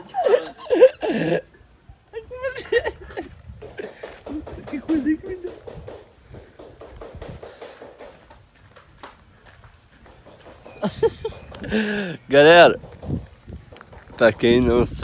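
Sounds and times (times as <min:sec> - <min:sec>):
people talking: 0:00.0 - 0:00.9, 0:04.3 - 0:05.6, 0:14.2 - 0:15.0.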